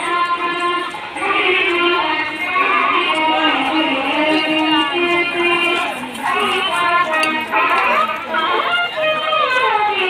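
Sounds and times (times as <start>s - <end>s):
high-pitched singing voice: 0.0s - 10.0s.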